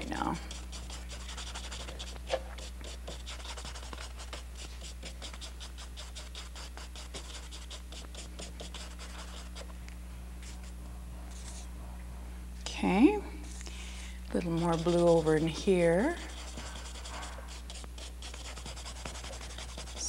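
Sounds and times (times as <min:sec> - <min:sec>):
low electrical hum: 0:00.0 - 0:20.0
paintbrush scrubbing on canvas: 0:00.1 - 0:09.7, 0:14.4 - 0:20.0.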